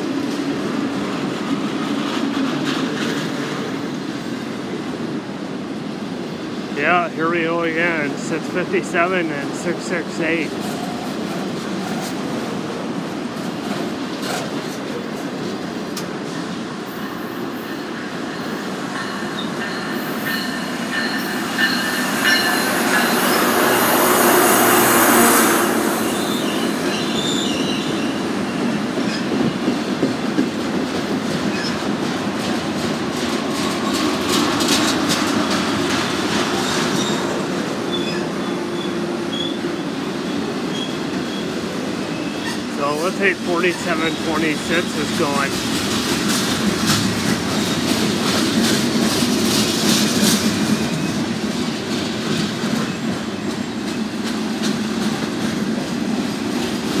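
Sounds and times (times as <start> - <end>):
freight train wheels clattering: 0.0 - 4.4, 26.2 - 57.0
commuter train rumble: 0.0 - 57.0
wheel squeal: 37.9 - 41.5.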